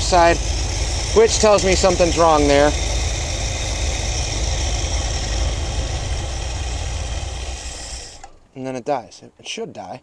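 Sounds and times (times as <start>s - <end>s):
car engine idling: 0.0s - 8.5s.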